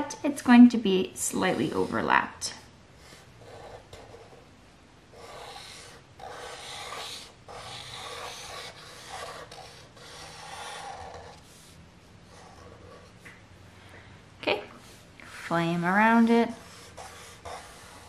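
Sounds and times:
marker rubbing on paper: 1.3 - 2.2, 5.2 - 13.1, 16.1 - 18.0.

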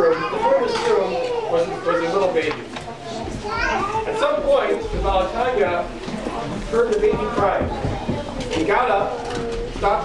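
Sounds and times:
child's voice: 0.0 - 4.2, 7.2 - 9.8
people speaking: 0.0 - 10.0.

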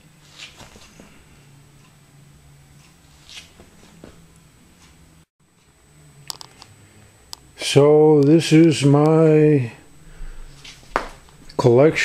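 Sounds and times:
faint low hum: 0.0 - 12.0
soft scuffs: 0.2 - 1.2, 3.1 - 5.0, 10.2 - 12.0.

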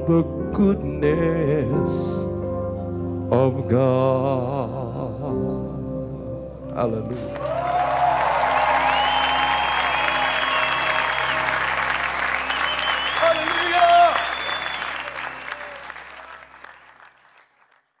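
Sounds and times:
low keyboard chord: 0.0 - 7.4
audience applauding and cheering: 7.1 - 18.0.

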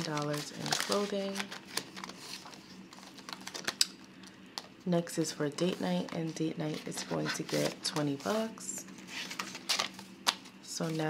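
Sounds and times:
plastic and paper rustling: 0.0 - 3.9, 5.6 - 11.0.

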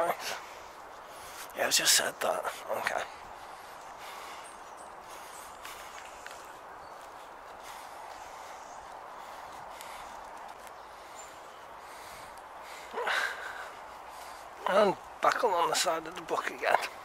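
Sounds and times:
footsteps on dirt path: 0.0 - 17.0.

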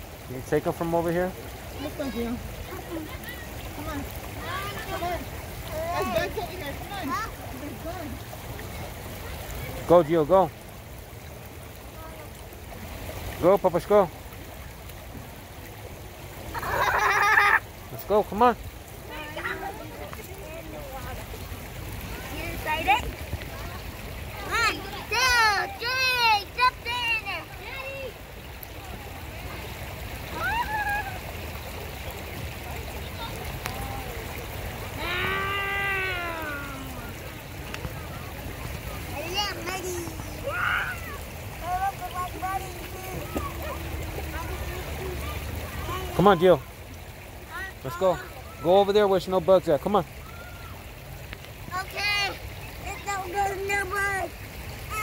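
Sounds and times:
stream water flowing: 0.0 - 55.0
child calling out: 30.3 - 31.2, 35.0 - 37.1, 39.4 - 41.2.

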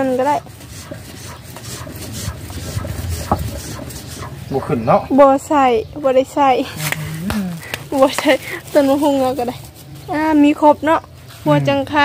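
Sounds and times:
water pump handle scraping: 0.0 - 4.8.

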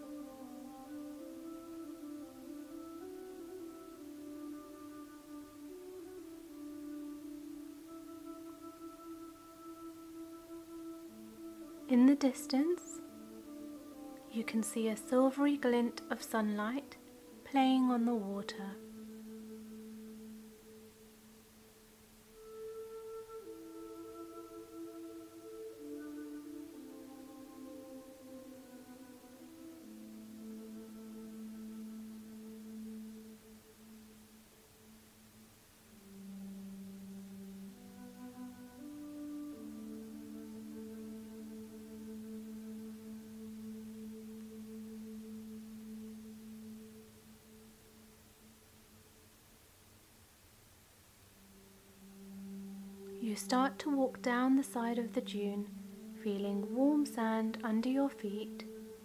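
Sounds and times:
ambient music of held tones: 0.0 - 49.4, 51.2 - 59.0.

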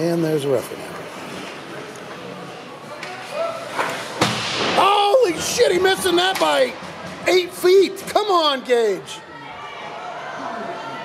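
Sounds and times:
echoing ice rink hubbub: 0.0 - 11.0
hockey stick striking puck: 3.8 - 5.0.

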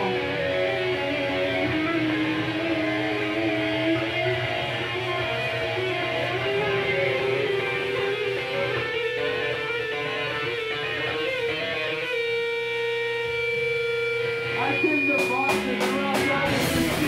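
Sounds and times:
sustained electric guitar notes: 0.0 - 17.0
drum and cymbal hits: 15.2 - 17.0.

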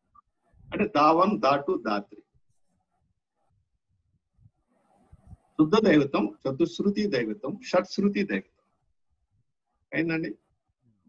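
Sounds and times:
man speaking: 0.7 - 2.2, 5.6 - 8.5, 9.9 - 10.4.

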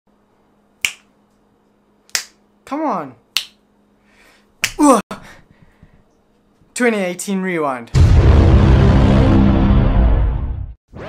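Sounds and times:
faint steady hum: 0.1 - 7.9
sharp snap: 0.8 - 1.1, 2.1 - 2.4, 3.4 - 3.6.

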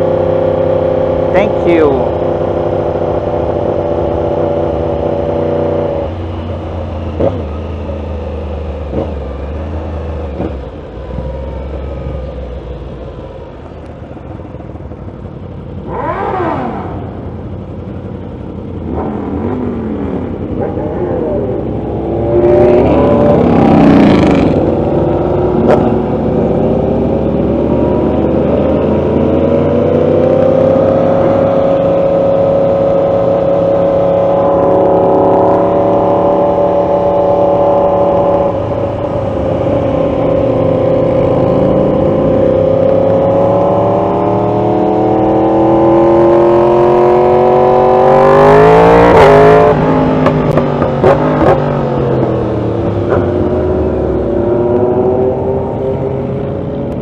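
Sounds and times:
motorcycle engine revving: 0.0 - 13.2, 15.0 - 57.0.

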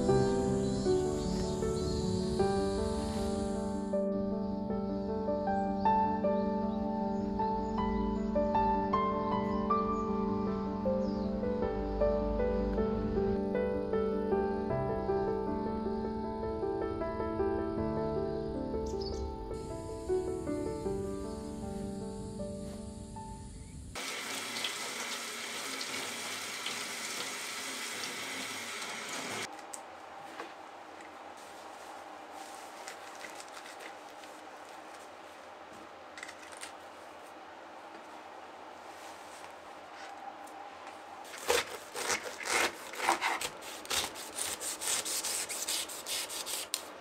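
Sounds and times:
soft music: 0.0 - 23.9
faucet running into steel sink: 24.0 - 29.4
knife sawing through pineapple rind: 41.3 - 46.9.

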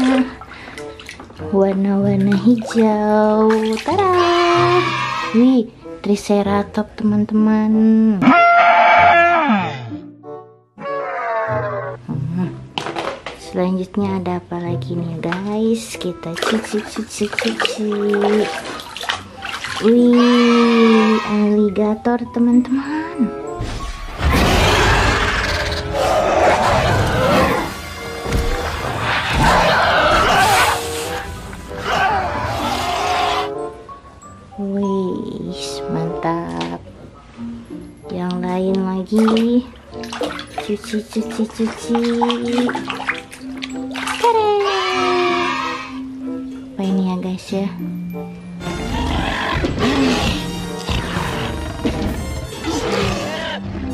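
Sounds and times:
water sloshing and splashing: 0.0 - 5.4, 12.7 - 13.6, 15.1 - 21.5, 26.9 - 31.9, 39.0 - 45.6, 49.6 - 53.9
background music: 0.0 - 53.9.

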